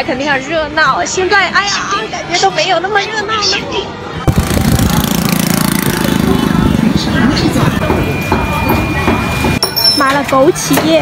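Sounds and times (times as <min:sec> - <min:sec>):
voices in street market: 0:00.0 - 0:11.0
motorbike engine running: 0:04.3 - 0:08.2.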